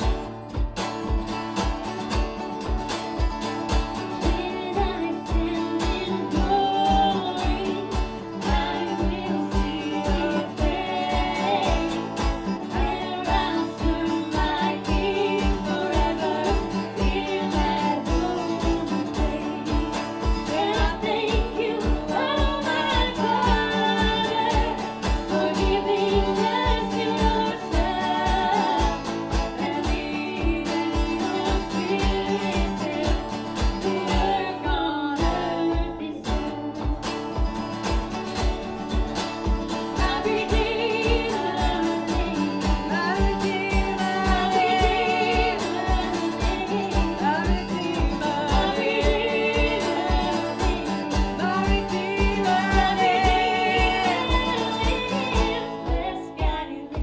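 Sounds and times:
strummed acoustic guitar: 0:00.0 - 0:57.0
woman singing worship song: 0:04.0 - 0:37.8, 0:39.7 - 0:57.0.

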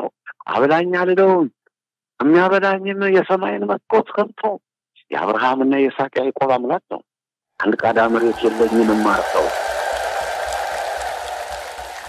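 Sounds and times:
large crowd applauding: 0:07.8 - 0:12.0.

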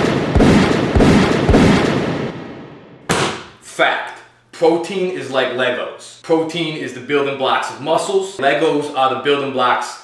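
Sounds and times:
explosion sound effect: 0:00.0 - 0:03.6
sudden hit: 0:00.0 - 0:03.6
person speaking: 0:03.6 - 0:10.0.

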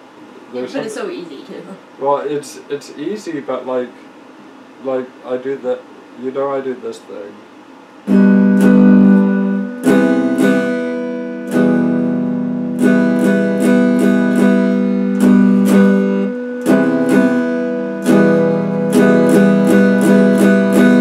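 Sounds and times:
electric guitar strumming chords: 0:08.1 - 0:21.0.

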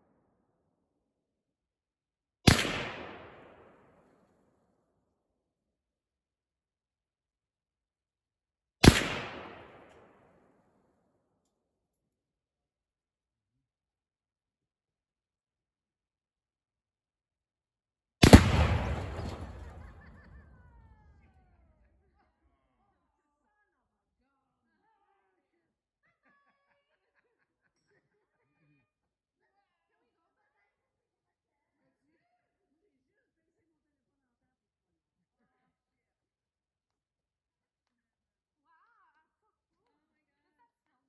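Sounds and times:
gunshot with echo: 0:02.5 - 0:03.9, 0:08.8 - 0:10.2, 0:18.2 - 0:20.6
loud explosion blast: 0:18.2 - 0:20.6
rumbling explosion tail: 0:18.2 - 0:20.8.

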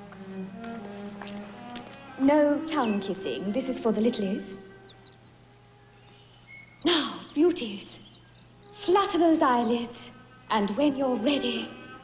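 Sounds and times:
small birds chirping: 0:01.9 - 0:10.8
woman's voice: 0:02.2 - 0:04.6, 0:06.8 - 0:08.1, 0:08.8 - 0:11.8.

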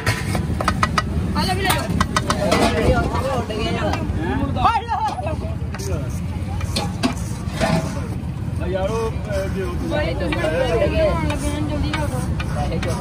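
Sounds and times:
street traffic rumble: 0:00.0 - 0:13.0
voices talking: 0:01.3 - 0:13.0
metal spatula scraping griddle: 0:05.8 - 0:13.0.

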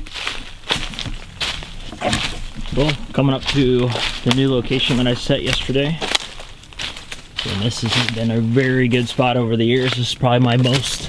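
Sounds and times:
footsteps crunching dry leaves: 0:00.0 - 0:11.0.

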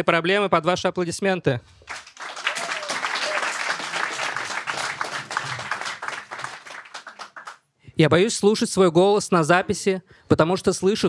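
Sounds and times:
audience applauding: 0:01.8 - 0:07.6.

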